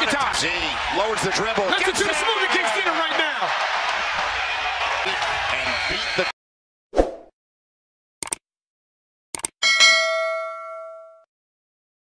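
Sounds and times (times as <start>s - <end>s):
notification bell ding: 9.6s - 11.3s.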